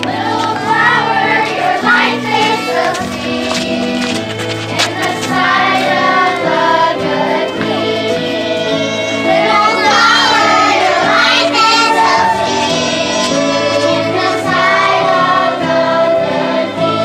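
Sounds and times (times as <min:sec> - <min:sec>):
children's choir singing: 0:00.0 - 0:17.0
violins: 0:00.0 - 0:17.0.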